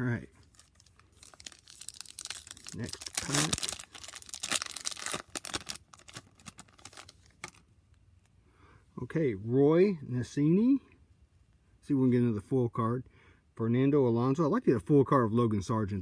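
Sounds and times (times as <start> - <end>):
wrapper tearing and crinkling: 0.4 - 7.6.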